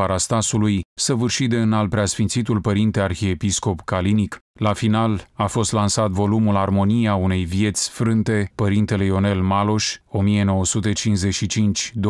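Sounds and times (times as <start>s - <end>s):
narrator reading: 0.0s - 12.0s.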